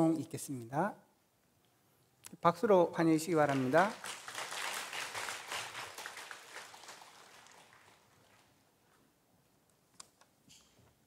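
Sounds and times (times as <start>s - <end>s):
congregation applauding: 3.3s - 8.7s.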